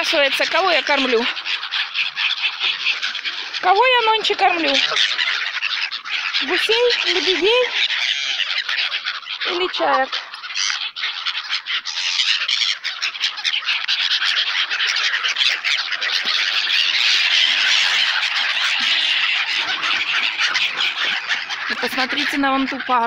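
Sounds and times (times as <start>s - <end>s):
flock of gulls squawking: 0.0s - 23.0s.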